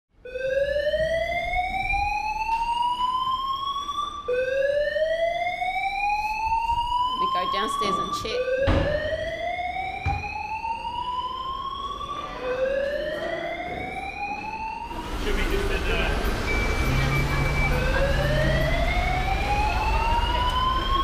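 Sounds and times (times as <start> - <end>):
fire alarm whooping: 0.2 - 21.0
street rumble: 12.6 - 21.0.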